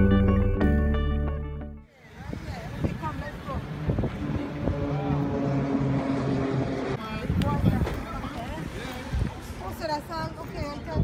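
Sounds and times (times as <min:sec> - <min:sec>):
street noise: 0:01.8 - 0:11.0
wind on microphone: 0:02.1 - 0:11.0.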